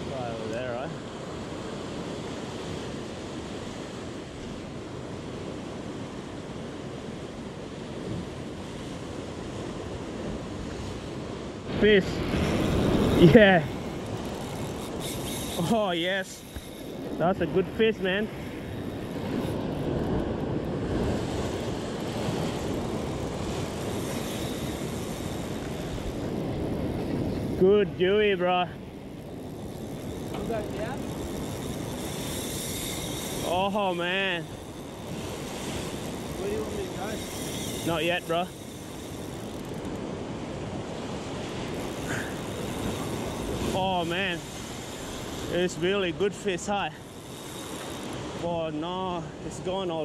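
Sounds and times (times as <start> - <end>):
ocean surf breaking on rocks: 0.0 - 50.0
wind buffeting microphone: 7.7 - 28.1, 28.8 - 46.2.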